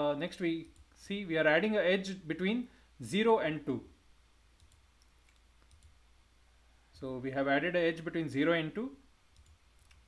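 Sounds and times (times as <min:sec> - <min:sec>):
faint mouse clicks: 0:04.6 - 0:06.0, 0:09.3 - 0:10.0.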